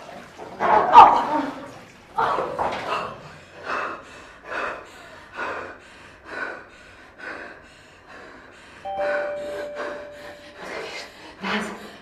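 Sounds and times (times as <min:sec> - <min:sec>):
woman breathing heavily: 0:03.3 - 0:12.0
steady electronic tone: 0:08.9 - 0:11.1.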